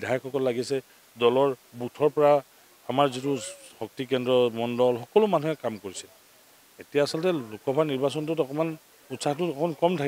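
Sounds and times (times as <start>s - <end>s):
man speaking into microphones: 0.0s - 6.2s, 6.8s - 10.0s.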